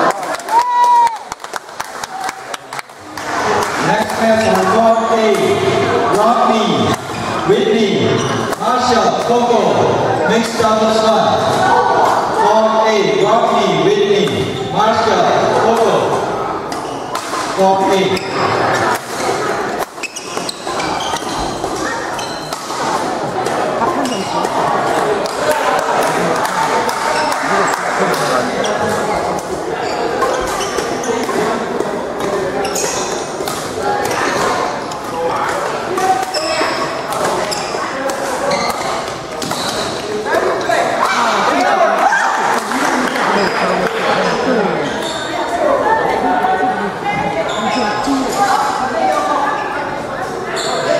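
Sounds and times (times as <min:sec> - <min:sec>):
chatter of many voices: 0:00.0 - 0:50.9
shoe squeaks on court floor: 0:20.0 - 0:22.6, 0:24.0 - 0:24.4, 0:29.8 - 0:31.5, 0:32.6 - 0:33.2, 0:36.1 - 0:40.0, 0:44.8 - 0:45.5, 0:47.4 - 0:48.4, 0:50.5 - 0:50.9
racket hitting shuttlecock: 0:22.4 - 0:29.5, 0:37.1 - 0:41.2.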